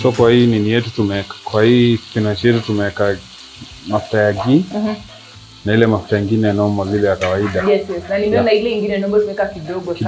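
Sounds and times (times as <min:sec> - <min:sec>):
food sizzling in a pot: 0:00.0 - 0:10.0.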